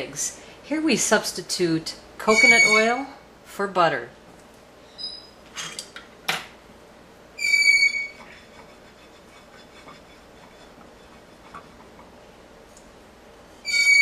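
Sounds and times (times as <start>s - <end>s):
high-pitched whistle-like tone: 2.3s - 2.9s, 7.4s - 8.2s, 13.6s - 14.0s.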